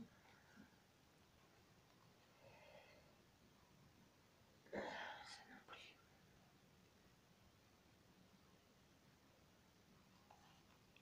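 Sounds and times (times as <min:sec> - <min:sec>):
person whispering: 0:04.7 - 0:06.1.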